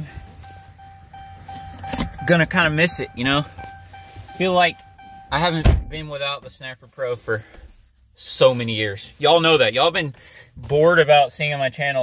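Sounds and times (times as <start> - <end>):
electronic warning chime: 0.0 - 6.0.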